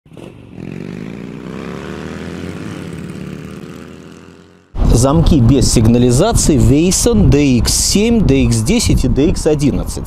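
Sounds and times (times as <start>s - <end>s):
motorcycle engine accelerating: 0.1s - 5.0s.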